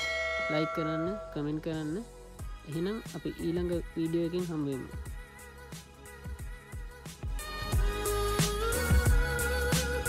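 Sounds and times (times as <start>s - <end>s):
bell chime: 0.0s - 2.0s
person speaking: 0.4s - 2.1s.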